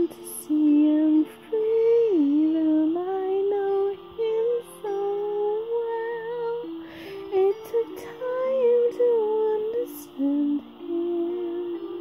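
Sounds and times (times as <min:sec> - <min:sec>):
soft sustained musical accompaniment: 0:00.0 - 0:12.0
woman singing slow melody: 0:00.0 - 0:12.0.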